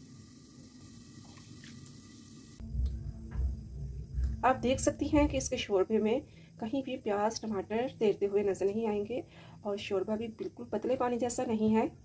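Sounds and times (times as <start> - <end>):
low rumble: 2.6 - 6.8.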